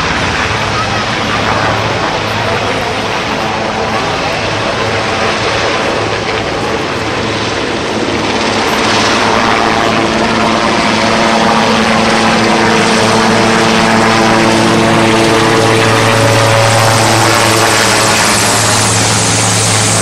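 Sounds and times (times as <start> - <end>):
helicopter flying overhead: 0.0 - 20.0.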